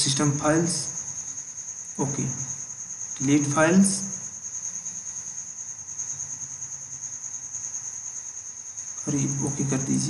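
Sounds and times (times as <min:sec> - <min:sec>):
light hiss: 0:00.0 - 0:10.0.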